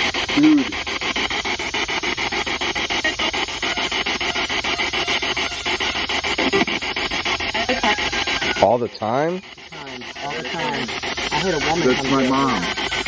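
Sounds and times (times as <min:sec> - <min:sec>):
radio static sweeping stations: 0:00.0 - 0:13.0.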